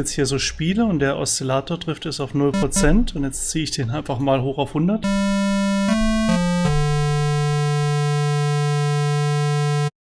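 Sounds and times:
buzzy synthesizer tone: 2.6 - 3.0, 5.0 - 10.0.

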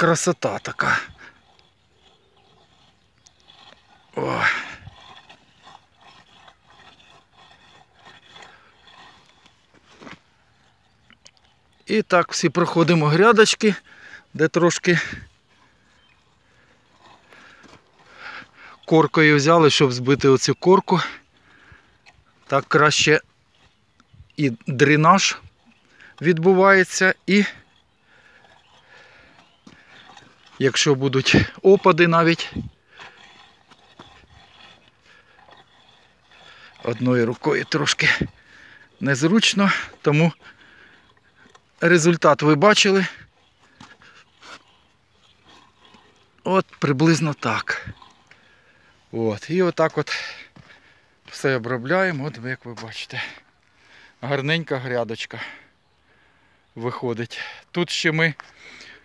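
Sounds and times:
rake scraping dry soil: 0.0 - 55.6.

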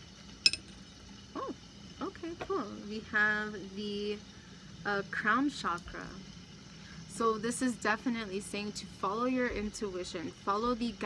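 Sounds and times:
charms clinking together: 0.4 - 0.7.

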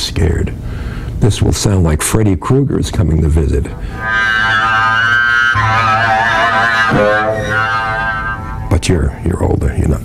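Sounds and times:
double bass bowed near bridge: 3.1 - 9.8.

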